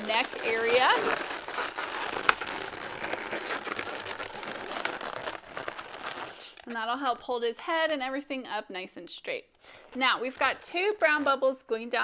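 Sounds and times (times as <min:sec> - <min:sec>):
balloons rubbing and crinkling: 0:00.0 - 0:07.4, 0:09.7 - 0:12.0.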